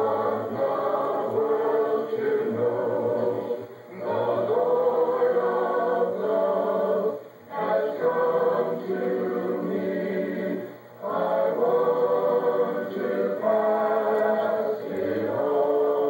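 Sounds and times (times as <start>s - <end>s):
youth chorus singing a cappella: 0.0s - 16.0s.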